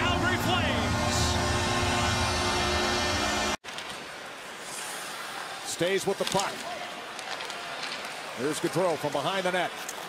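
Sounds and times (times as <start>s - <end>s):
murmur of arena crowd: 0.0s - 10.0s.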